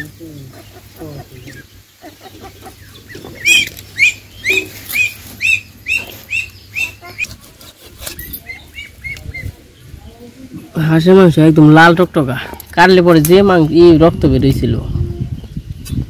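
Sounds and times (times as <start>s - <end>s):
bird calling with high notes: 0.0s - 9.9s.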